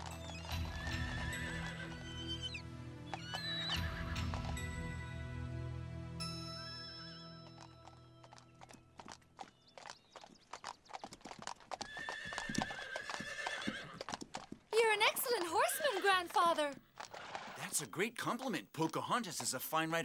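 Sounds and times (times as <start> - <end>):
horse hooves clip-clopping: 0.0 - 4.8, 7.4 - 20.0
background music: 0.0 - 9.1
horse whinnying: 0.2 - 4.4, 11.8 - 14.1, 15.5 - 16.4, 17.0 - 17.6.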